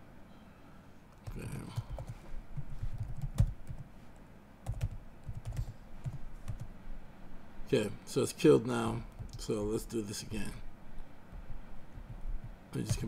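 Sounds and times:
computer keyboard typing: 1.2 - 3.9, 4.6 - 6.7, 9.1 - 9.4, 12.0 - 13.0.

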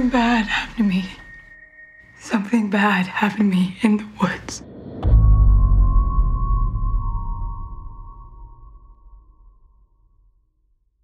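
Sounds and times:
steady high tone: 0.0 - 3.1
deep low rumble: 4.6 - 9.4.

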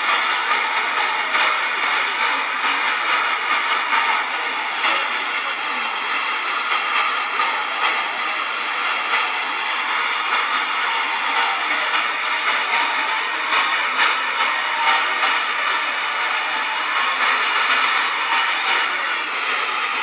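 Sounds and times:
steady rushing noise: 0.0 - 20.0.

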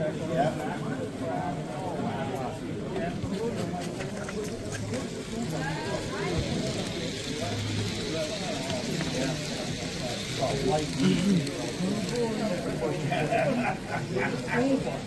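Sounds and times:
several people talking: 0.0 - 15.0.

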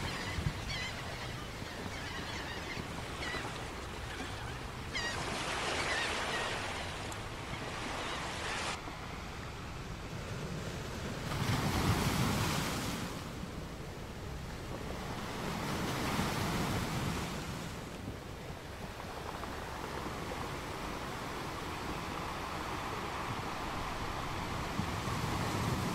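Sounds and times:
seagull calling: 0.0 - 8.8
ocean surf washing onto beach: 5.7 - 25.9.

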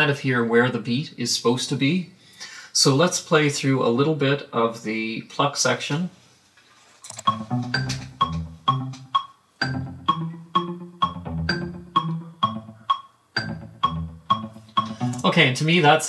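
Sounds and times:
metronome clicking: 7.1 - 15.3
synth pluck notes: 7.2 - 15.4.

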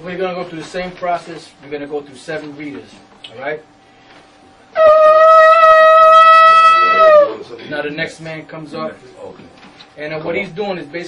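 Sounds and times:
ram's horn blown in long note: 4.8 - 7.4.

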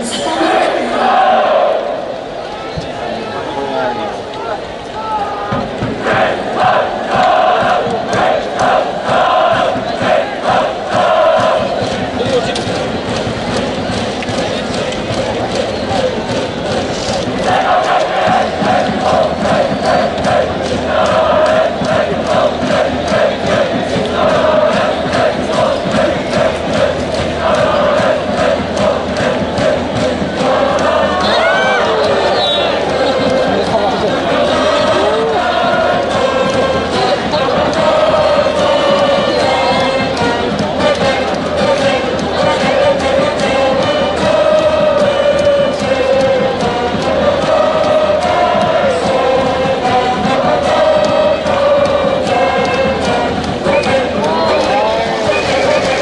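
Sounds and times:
crowd chanting: 0.0 - 56.0
steady drumbeat: 5.0 - 56.0
brass band playing: 24.2 - 56.0.

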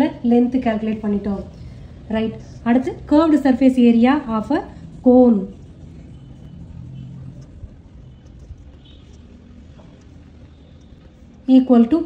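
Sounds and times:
low background rumble: 0.0 - 12.0.

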